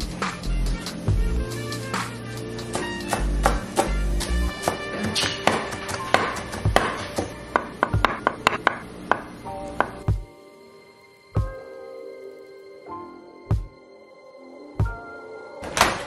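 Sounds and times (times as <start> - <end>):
background music with bass beat: 0.0 - 6.8, 11.4 - 11.6
knife chopping on wooden board: 2.7 - 3.9, 4.6 - 10.0.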